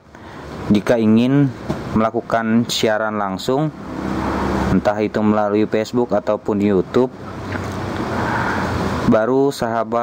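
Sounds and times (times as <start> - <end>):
steady rushing noise: 3.6 - 5.4, 7.0 - 9.2.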